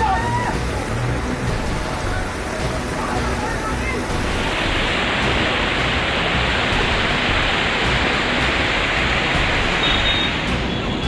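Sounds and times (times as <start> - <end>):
rushing floodwater: 0.0 - 11.0.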